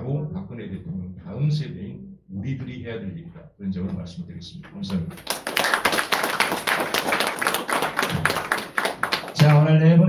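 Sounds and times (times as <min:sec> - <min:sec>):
audience applause: 0:05.2 - 0:09.7.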